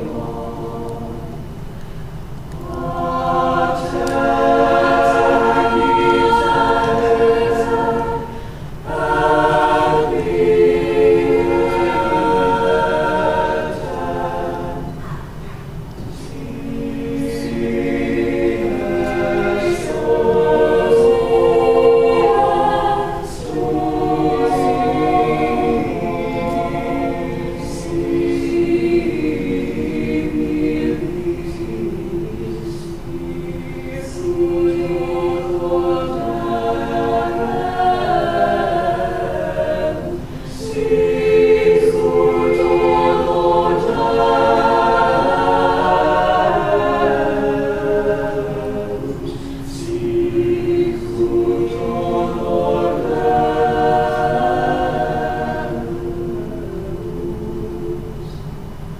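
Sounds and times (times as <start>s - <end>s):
choir singing a cappella: 0.0s - 58.9s.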